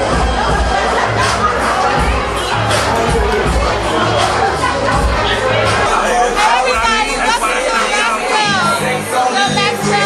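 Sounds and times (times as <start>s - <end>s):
crowd shouting: 0.0s - 10.0s
hip-hop club music with heavy bass: 0.0s - 10.0s.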